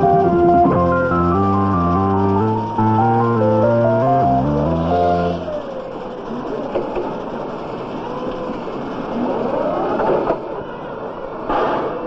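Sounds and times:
forklift motor whine: 0.0 - 6.5
factory machinery din: 0.0 - 10.6.

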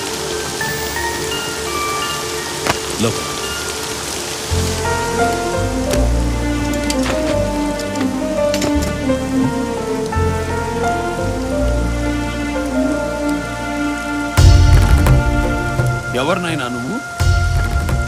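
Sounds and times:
heavy rain falling: 0.0 - 18.0
slow film score: 0.0 - 18.0.

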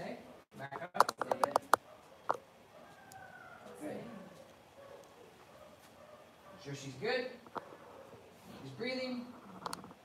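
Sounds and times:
sharp clicks: 1.0 - 2.4, 9.6 - 10.0.

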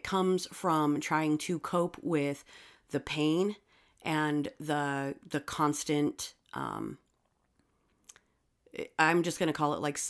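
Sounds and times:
short breath: 2.4 - 2.9
faint mouth clicks: 8.0 - 8.3.

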